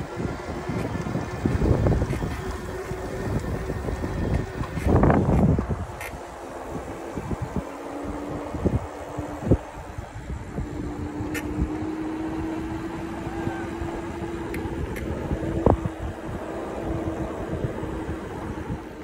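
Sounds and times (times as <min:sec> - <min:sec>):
electric bike motor hum: 0:00.0 - 0:19.0
wind buffeting microphone: 0:00.0 - 0:19.0.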